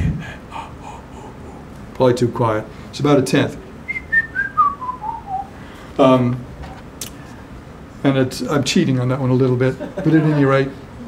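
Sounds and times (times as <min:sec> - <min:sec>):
man whistling descending notes: 0:03.9 - 0:05.5.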